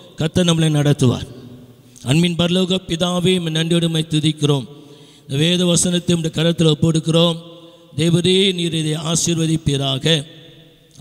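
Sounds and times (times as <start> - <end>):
man preaching into a microphone: 0.0 - 11.0.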